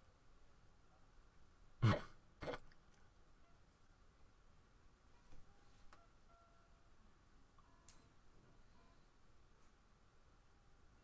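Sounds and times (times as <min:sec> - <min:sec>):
person clearing throat: 0:01.8 - 0:02.7.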